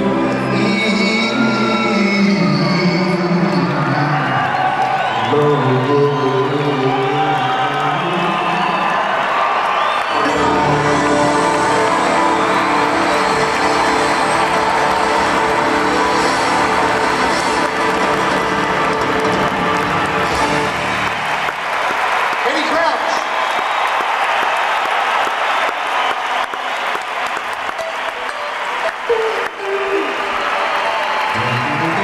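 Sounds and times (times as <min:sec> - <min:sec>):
crowd applauding and cheering: 0:00.0 - 0:32.0
acoustic guitars and strings band: 0:10.1 - 0:21.5.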